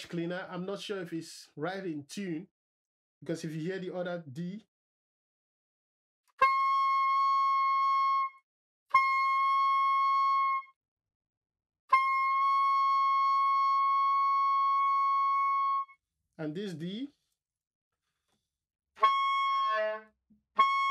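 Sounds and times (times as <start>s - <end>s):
soprano saxophone notes: 19.0s - 20.9s.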